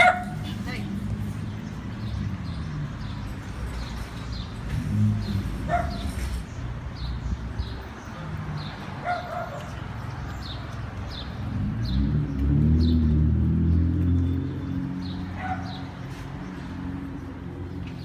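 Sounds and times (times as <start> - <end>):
vehicle engine passing: 0.0 - 7.6, 8.2 - 18.0.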